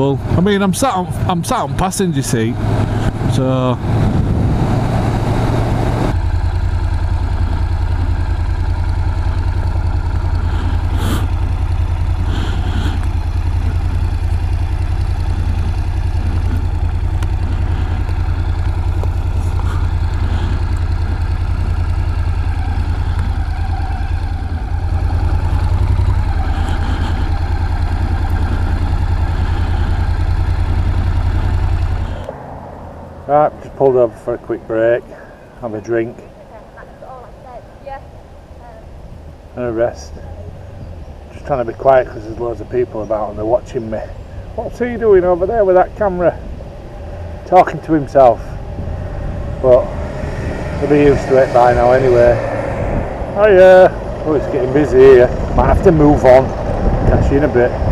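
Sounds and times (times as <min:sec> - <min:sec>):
motorcycle engine running: 0:00.0 - 0:57.9
wind rush on camera: 0:02.6 - 0:06.2, 0:48.4 - 0:57.9.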